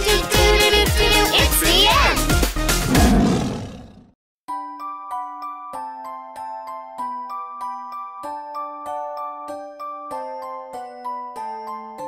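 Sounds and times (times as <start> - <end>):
cartoon dinosaur roar: 2.8 - 4.2
chiming lullaby melody: 4.5 - 12.0.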